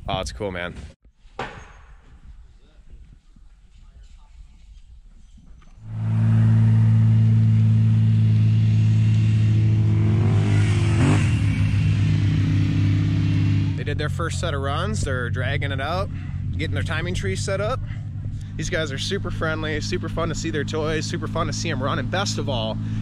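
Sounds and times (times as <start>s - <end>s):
vehicle engine running: 5.8s - 23.0s.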